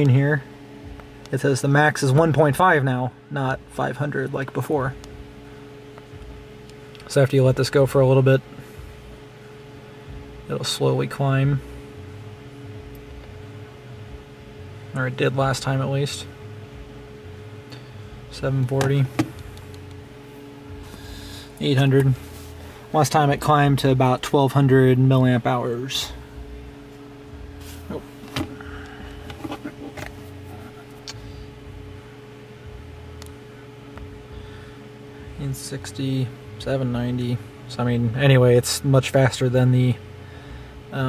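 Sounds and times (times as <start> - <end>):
background hum: 0.0 - 41.0
phone handling: 18.7 - 19.9, 29.2 - 30.3.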